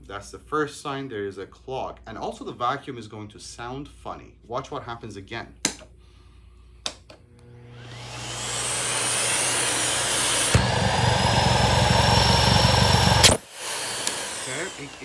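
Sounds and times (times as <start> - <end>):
vacuum cleaner motor whining: 7.3 - 15.0.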